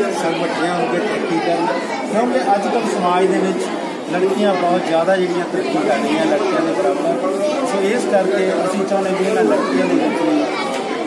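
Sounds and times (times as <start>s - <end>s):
man talking: 0.0s - 10.6s
voices chattering: 0.0s - 11.0s.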